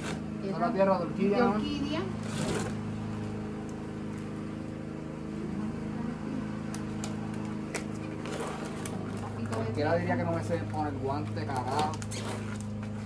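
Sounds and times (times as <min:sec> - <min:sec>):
motor humming: 0:00.0 - 0:13.0
soil and plastic rustling: 0:02.2 - 0:03.4, 0:06.9 - 0:13.0.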